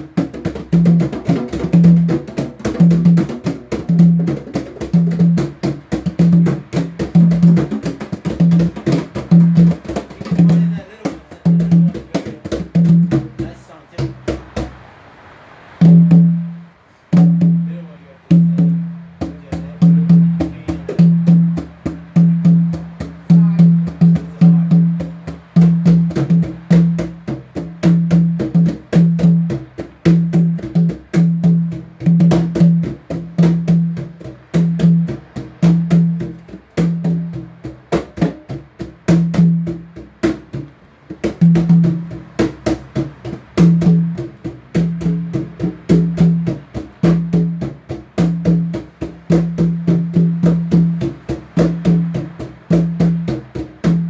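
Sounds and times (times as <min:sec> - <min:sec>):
djembe hand drumming: 0:00.0 - 0:14.9, 0:15.8 - 0:54.0.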